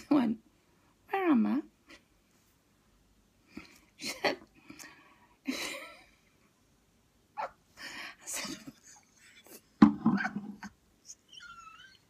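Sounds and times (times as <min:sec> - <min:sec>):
woman laughing helplessly: 0:05.5 - 0:06.1.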